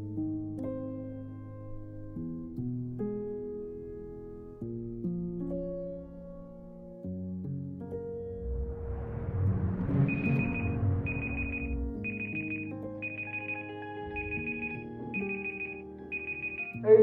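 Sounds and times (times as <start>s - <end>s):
soft background music: 0.0s - 17.0s
mobile phone trilling ring: 10.1s - 16.8s.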